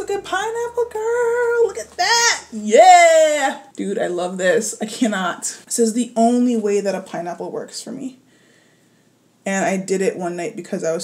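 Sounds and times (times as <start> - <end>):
woman making sing-song vocal sounds: 0.0 - 3.8.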